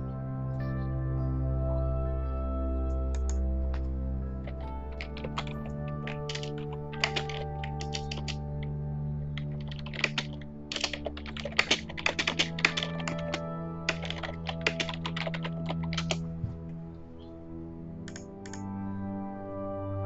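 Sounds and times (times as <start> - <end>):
soft ambient music: 0.0 - 20.0
computer keyboard clicking: 3.1 - 3.8, 4.4 - 8.4, 9.4 - 16.2, 18.1 - 18.7.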